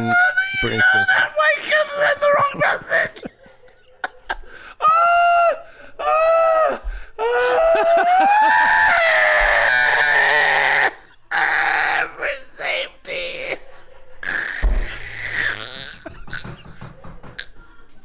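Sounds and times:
men laughing hysterically: 0:00.0 - 0:12.2, 0:13.0 - 0:17.0.

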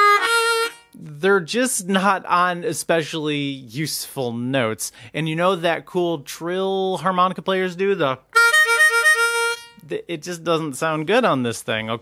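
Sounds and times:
harmonica trill: 0:00.0 - 0:01.1, 0:08.3 - 0:10.0.

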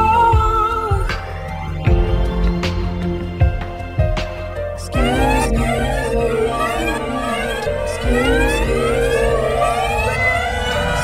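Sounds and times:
electronic dance music: 0:04.8 - 0:11.0
siren-like synth sweep: 0:05.0 - 0:11.0.

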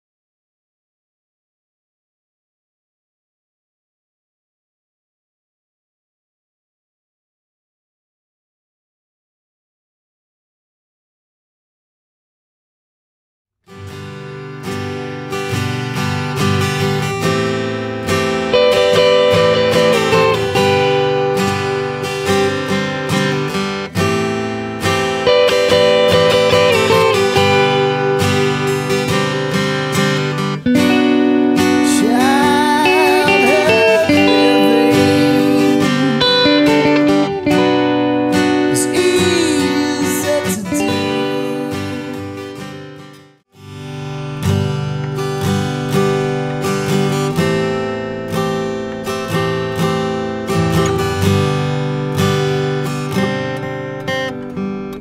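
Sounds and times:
guitar strummed chords: 0:13.7 - 0:55.0
strummed acoustic guitar: 0:13.7 - 0:55.0
sliding bending guitar notes: 0:16.1 - 0:42.8.

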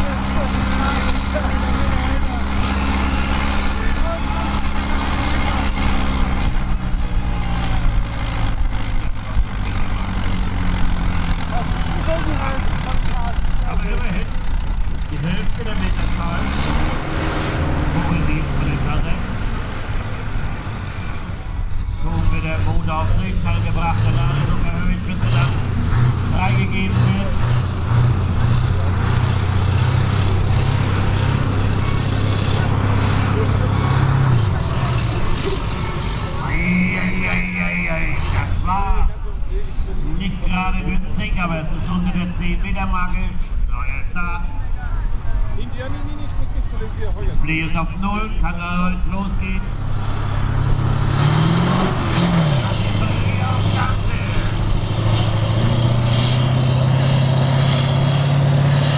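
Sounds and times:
diesel tractor engine running: 0:00.0 - 0:58.9.

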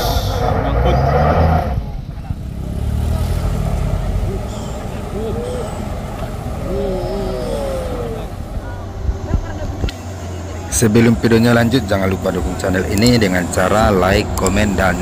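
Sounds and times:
vehicle engine humming: 0:00.0 - 0:15.0
people calling out faintly: 0:04.2 - 0:10.7.

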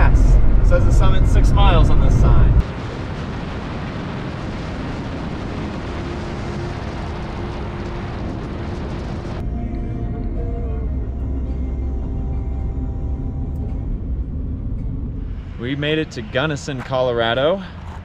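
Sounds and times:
car road and wind noise: 0:00.0 - 0:18.0.

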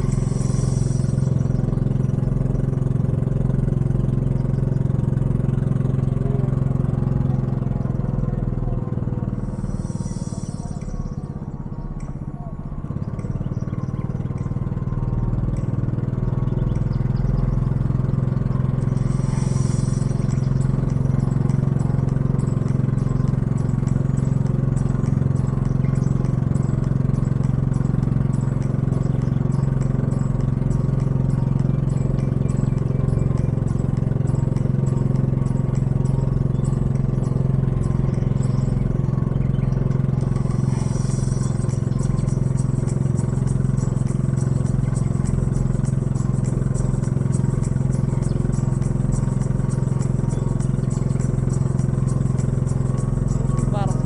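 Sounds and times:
boat engine humming: 0:00.0 - 0:54.0.

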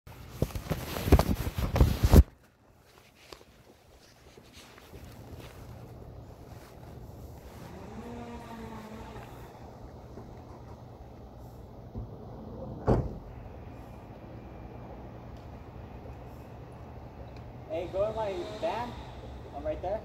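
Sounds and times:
microphone crackling and buffeting: 0:00.1 - 0:11.7.

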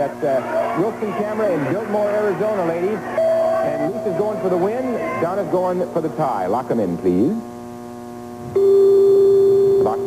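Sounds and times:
loud electronic beep: 0:03.2 - 0:04.7.

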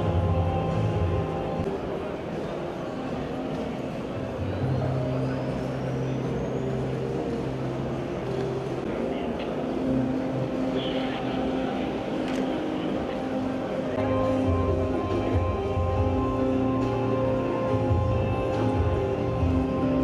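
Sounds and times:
murmur of crowd: 0:00.0 - 0:20.0.

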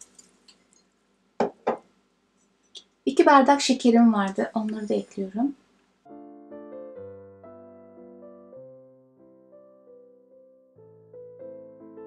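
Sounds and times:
glass set down on hard surface: 0:01.4 - 0:01.9.

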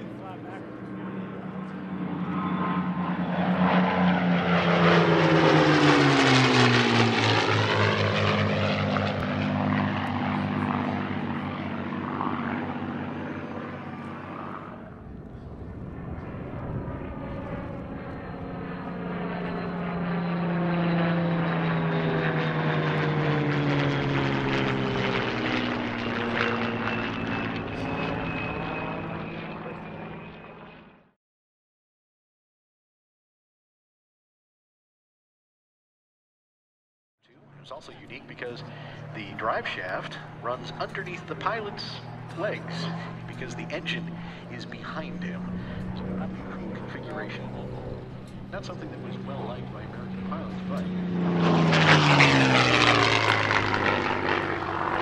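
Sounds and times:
propeller planes flying by: 0:00.0 - 0:31.2, 0:37.3 - 0:55.0.

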